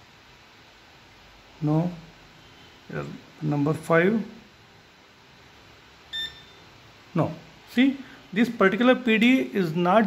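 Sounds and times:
high-pitched electronic beep: 0:06.1 - 0:06.6.

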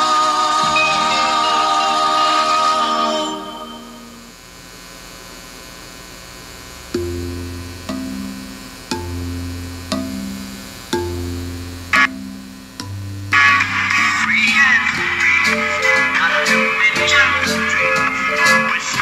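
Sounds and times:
background music: 0:00.0 - 0:04.3, 0:07.0 - 0:19.0
low steady hum: 0:00.0 - 0:19.0
pitched note over low bass: 0:06.8 - 0:16.2.

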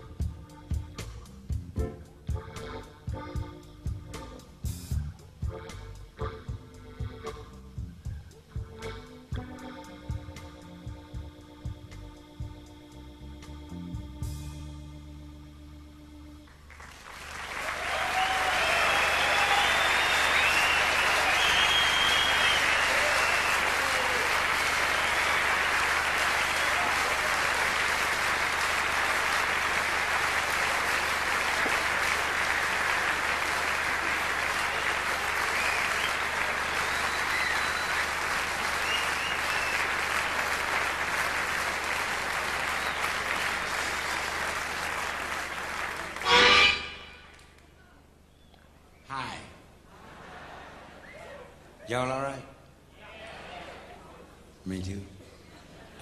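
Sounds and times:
audience applauding: 0:16.5 - 0:47.7
shouts and cheering: 0:17.5 - 0:27.9
whistles: 0:17.8 - 0:25.7, 0:34.6 - 0:40.6, 0:42.6 - 0:43.4, 0:48.3 - 0:49.1, 0:51.0 - 0:51.4.

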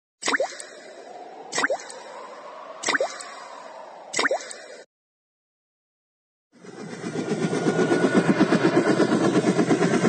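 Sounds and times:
water-drop ringtone plops: 0:00.2 - 0:00.7, 0:01.5 - 0:01.9, 0:02.8 - 0:03.3, 0:04.2 - 0:04.8.

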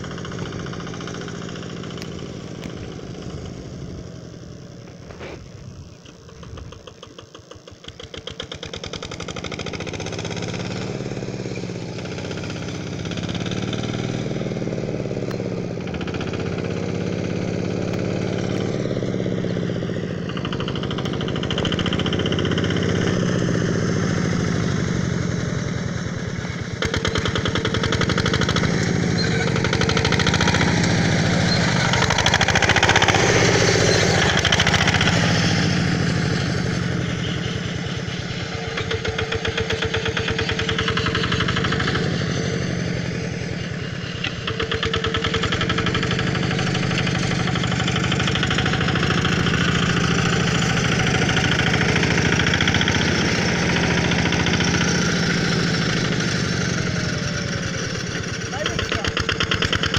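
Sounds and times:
tractor engine chugging: 0:00.0 - 0:59.9.

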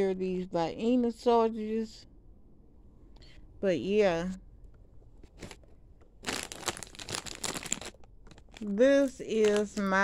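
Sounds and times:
chip bag crinkling: 0:05.3 - 0:09.8.

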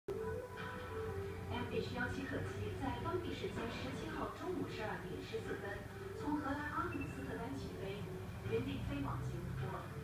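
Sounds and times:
background music with held tones: 0:00.1 - 0:10.0
newsreader speaking: 0:01.4 - 0:10.0.

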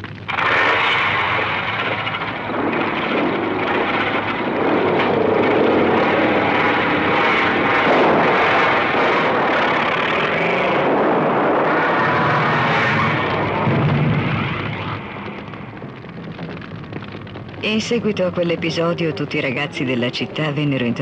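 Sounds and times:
motorcycles revving and pulling away: 0:00.4 - 0:13.7.

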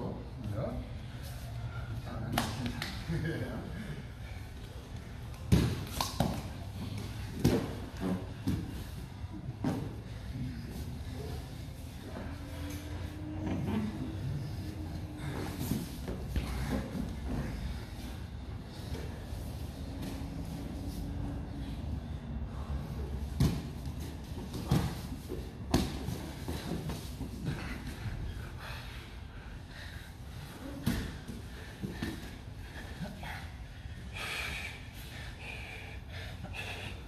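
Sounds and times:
breathing: 0:00.7 - 0:02.2, 0:06.8 - 0:23.6, 0:24.7 - 0:37.0
bodies thudding on foam mats: 0:23.2 - 0:27.8.

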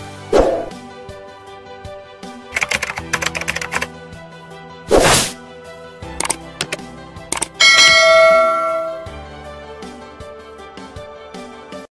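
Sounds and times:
mouse clicks: 0:06.2 - 0:07.6
bell chime: 0:07.4 - 0:09.2.

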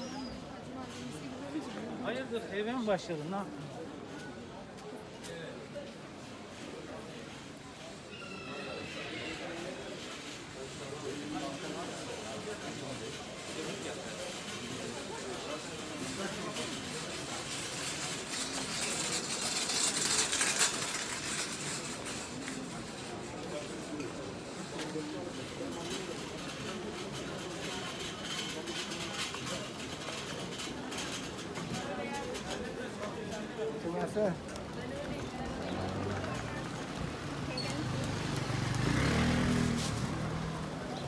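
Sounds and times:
busy shopping street ambience: 0:00.0 - 0:41.0
motor scooter passing: 0:34.7 - 0:41.0.

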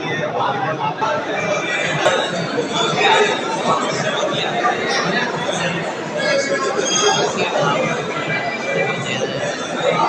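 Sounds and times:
people talking at once: 0:00.0 - 0:10.0.

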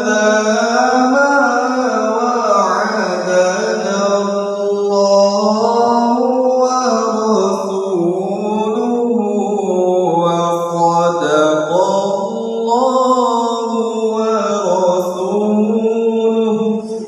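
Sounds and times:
man reciting melodically: 0:00.0 - 0:17.0.

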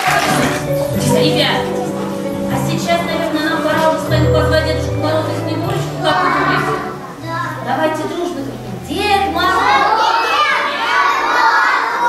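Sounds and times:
young children calling out: 0:06.0 - 0:07.7, 0:09.4 - 0:12.0.

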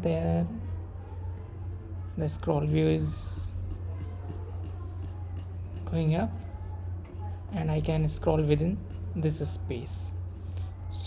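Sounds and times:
faint scratchy noises: 0:00.4 - 0:11.0.

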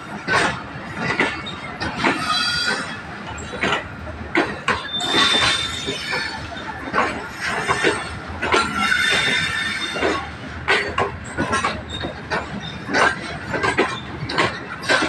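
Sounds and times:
train rumble: 0:00.0 - 0:15.0
wheels knocking over rail joints: 0:00.0 - 0:15.0
high wheel squeals: 0:01.3 - 0:03.6, 0:04.8 - 0:06.8, 0:07.4 - 0:10.3, 0:11.3 - 0:13.2.

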